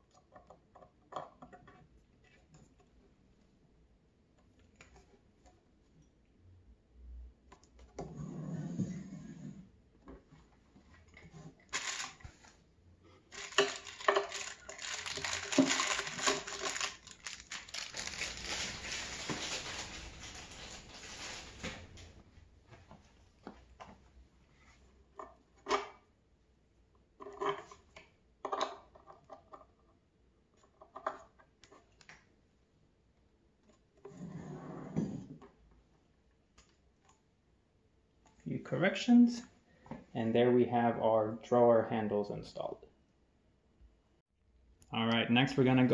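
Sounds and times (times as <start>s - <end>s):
rustling handling noise: 10.2s - 25.0s.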